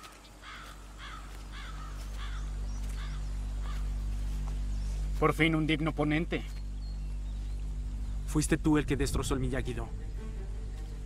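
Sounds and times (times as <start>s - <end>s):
crow cawing: 0.0s - 4.4s
low steady drone: 0.8s - 11.0s.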